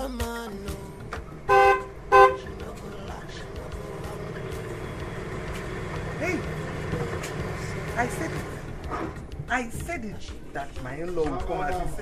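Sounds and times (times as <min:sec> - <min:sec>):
car engine running: 0:00.5 - 0:10.8
car horn toots: 0:01.5 - 0:02.7.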